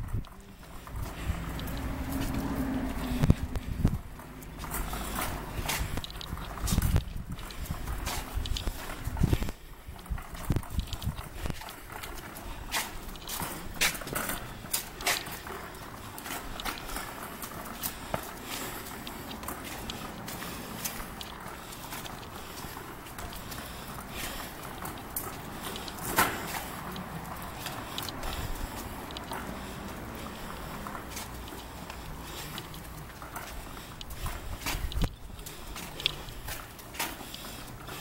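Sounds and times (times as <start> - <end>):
cart clicks and knocks: 0.0 - 38.0
cart rolling over concrete: 0.0 - 38.0
footsteps: 0.0 - 38.0.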